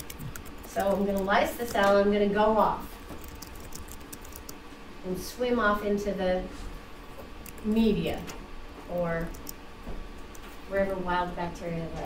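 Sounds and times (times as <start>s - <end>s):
keyboard typing clicks: 0.0s - 1.9s, 3.2s - 4.6s, 7.4s - 7.7s, 9.2s - 9.6s.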